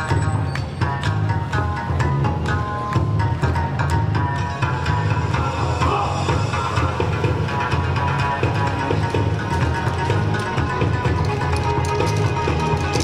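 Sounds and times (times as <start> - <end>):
dance music with heavy bass: 3.2 - 13.0.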